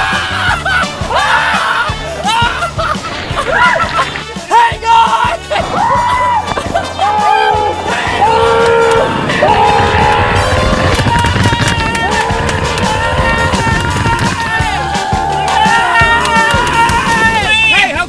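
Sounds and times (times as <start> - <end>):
steady bass: 0.0 - 18.0.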